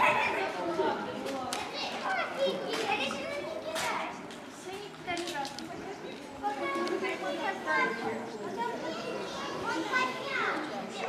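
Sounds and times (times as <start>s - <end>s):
children's voices: 0.0s - 11.0s
people chattering: 0.0s - 11.0s.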